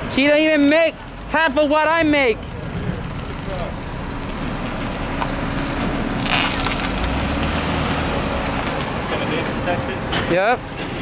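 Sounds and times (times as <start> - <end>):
traffic noise: 0.0 - 11.0
low engine hum: 0.9 - 11.0.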